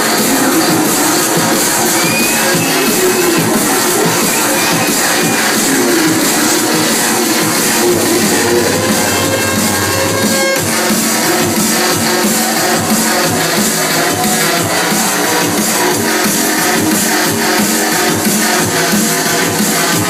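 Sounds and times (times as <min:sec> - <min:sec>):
drum and bass music: 0:00.0 - 0:20.0
sustained deep bass note: 0:05.8 - 0:11.6.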